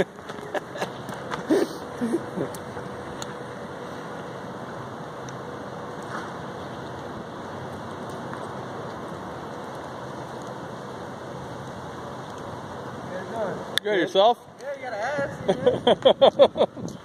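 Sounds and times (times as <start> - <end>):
steady outdoor rushing noise: 0.0 - 17.0.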